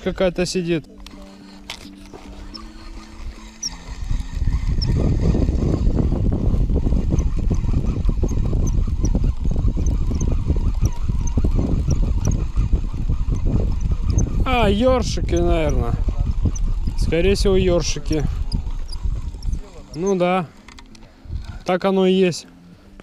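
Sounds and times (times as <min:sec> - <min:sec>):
background music: 0:00.0 - 0:07.1, 0:14.0 - 0:23.0
wind buffeting microphone: 0:00.0 - 0:22.0.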